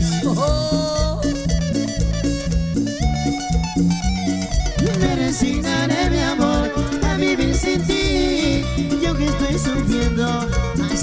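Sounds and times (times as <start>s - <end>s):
latin dance band playing: 0.0s - 11.0s.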